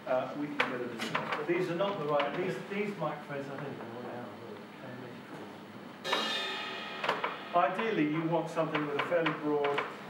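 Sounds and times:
cymbal ringing: 6.0s - 8.7s.

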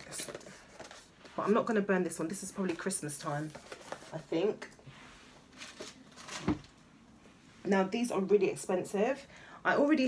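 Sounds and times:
packaging rustle: 5.5s - 6.8s.

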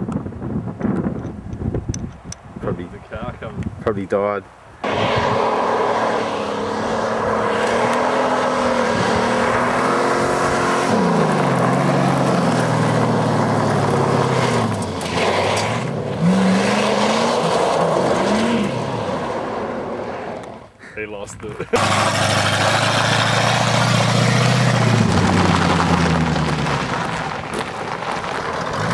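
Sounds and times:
car engine revving: 4.8s - 20.6s, 21.7s - 28.9s
tyres spinning on gravel: 10.9s - 16.0s, 21.7s - 28.9s.

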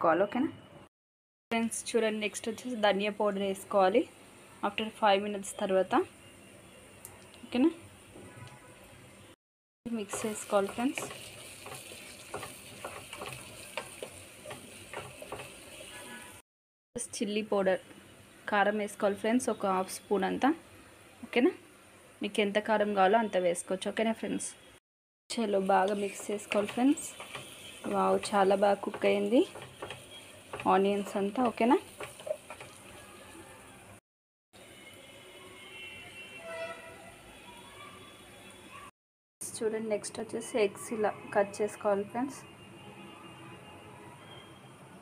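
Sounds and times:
food sizzling in oil: 9.9s - 16.4s, 25.3s - 34.0s
spatula scraping a pan: 10.1s - 16.4s, 25.6s - 33.7s.

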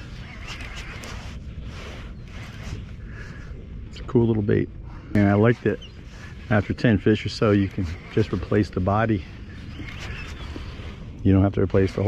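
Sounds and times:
wind: 0.0s - 12.0s.

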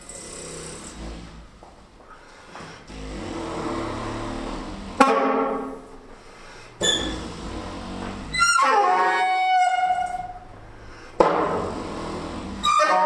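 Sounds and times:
experimental saxophone playing: 2.9s - 13.0s.

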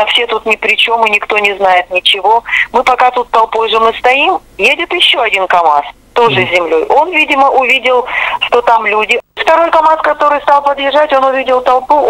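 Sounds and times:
woman talking over a telephone: 0.0s - 12.0s.

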